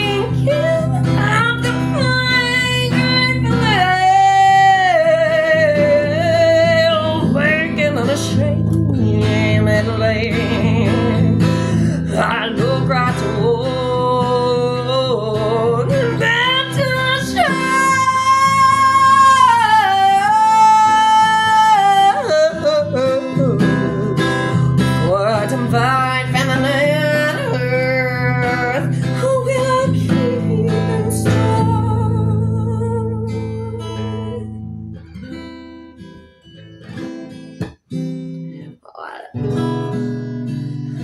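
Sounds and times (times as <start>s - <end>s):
woman singing: 0.0s - 34.9s, 38.4s - 41.0s
acoustic guitar strumming: 0.0s - 41.0s.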